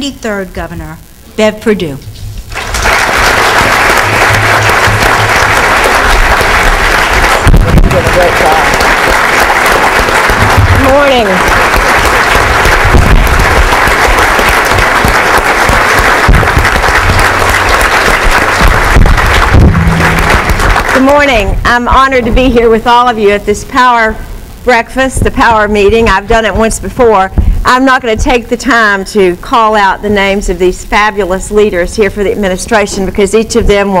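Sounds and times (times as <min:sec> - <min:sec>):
audience applause: 0:02.5 - 0:21.2.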